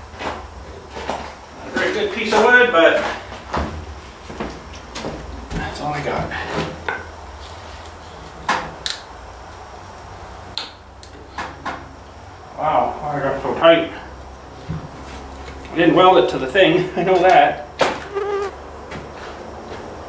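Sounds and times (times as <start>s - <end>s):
person speaking: 18.0s - 18.6s.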